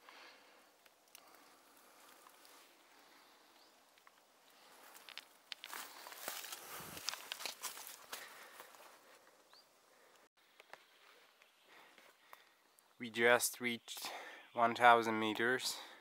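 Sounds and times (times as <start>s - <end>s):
footsteps on dry leaves and twigs: 4.0s - 9.3s.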